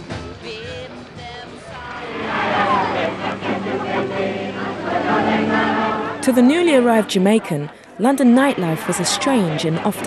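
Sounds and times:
choir singing: 1.7s - 10.0s.

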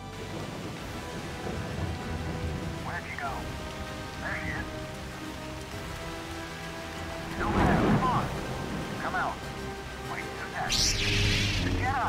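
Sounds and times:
heavy rain falling: 0.0s - 12.0s
blaster shot: 10.7s - 11.8s.

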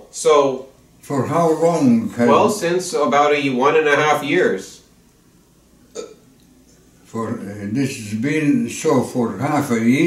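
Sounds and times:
person throat sound: 5.9s - 6.2s.

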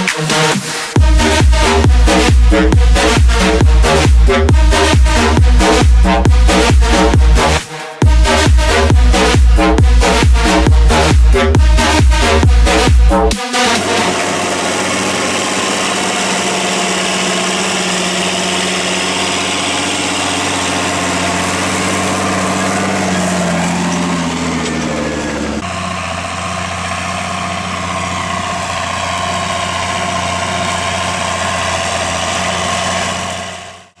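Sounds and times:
tractor diesel engine under load: 0.0s - 34.0s.

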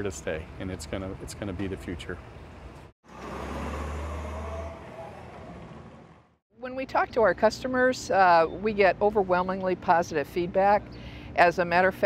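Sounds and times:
truck engine rumbling: 0.0s - 6.4s.

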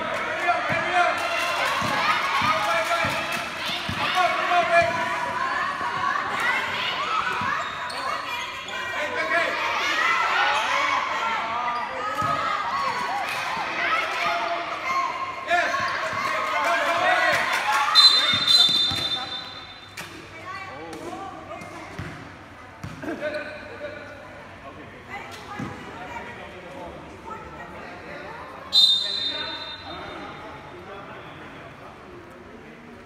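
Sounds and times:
referee's whistle: 17.9s - 19.9s, 28.7s - 30.2s
basketball bouncing on court: 22.0s - 23.1s.

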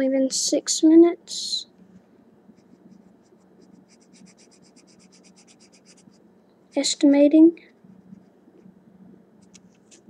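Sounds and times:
pencil scratching on paper: 2.6s - 6.2s.

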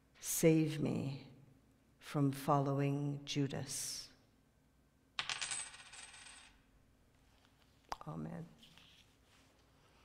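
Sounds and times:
coins jingling and clinking: 5.2s - 6.6s.

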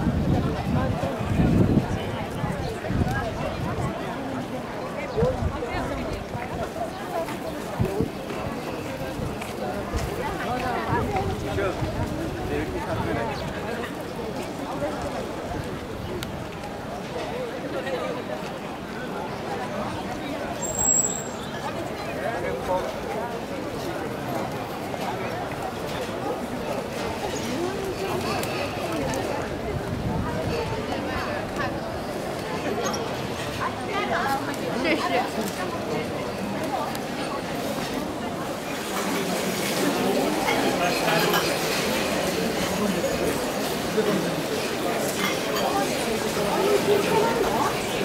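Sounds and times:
indistinct chatter of passers-by: 0.0s - 48.0s.

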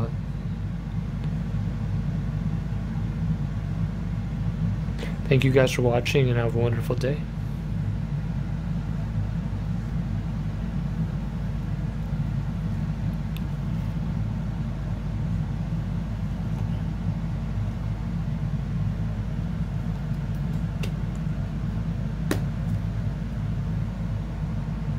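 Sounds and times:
steady low hum: 0.0s - 24.9s.

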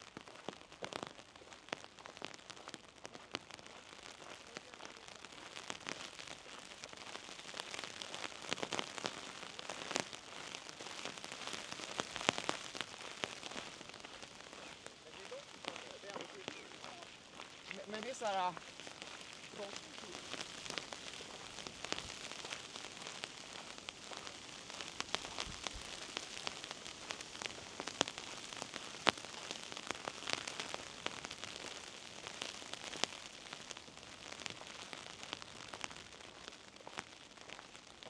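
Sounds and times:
rain drops tapping on umbrella: 0.0s - 38.0s
steady hiss of rain: 0.0s - 38.0s.

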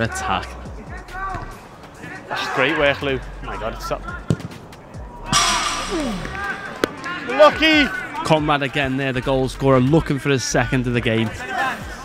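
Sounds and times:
sharp knock: 5.3s - 6.9s.

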